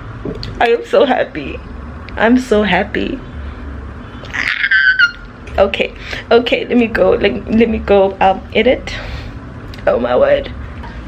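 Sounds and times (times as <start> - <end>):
woman squealing: 4.3 - 5.3.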